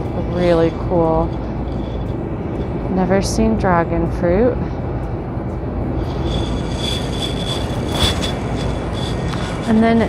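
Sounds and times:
thin high-pitched squeal: 0.0 - 3.0, 6.0 - 10.0
store room hum: 0.0 - 10.0.

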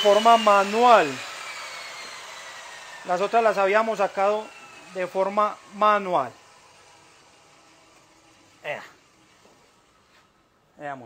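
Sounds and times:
table saw winding down: 0.0 - 10.5.

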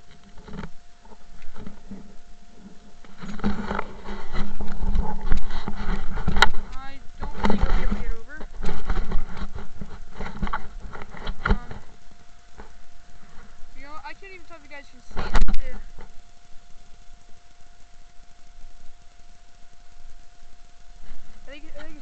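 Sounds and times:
brush rustling against camera case: 0.0 - 13.8.

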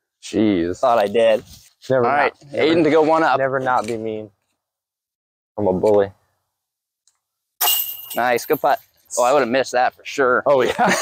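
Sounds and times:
disc hitting metal chains: 7.6 - 9.0.

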